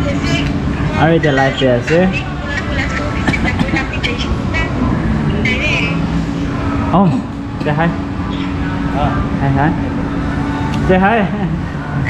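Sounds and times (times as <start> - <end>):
indistinct voices: 0.0 - 12.0
low room rumble: 0.0 - 12.0.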